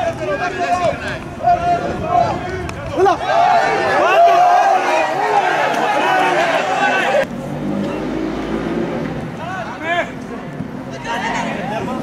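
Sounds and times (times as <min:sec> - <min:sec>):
people shouting: 0:00.0 - 0:07.3, 0:10.9 - 0:12.0.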